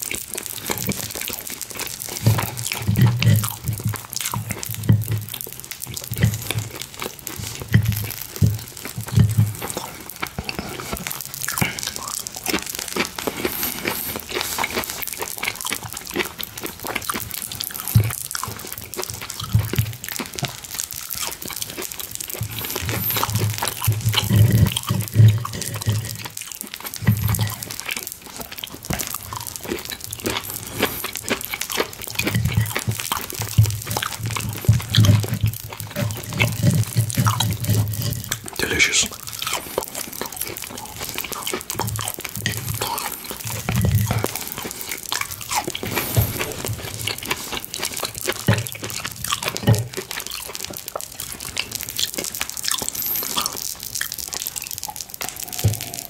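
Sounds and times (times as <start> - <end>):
chewing mouth sounds: 0.0 - 56.0.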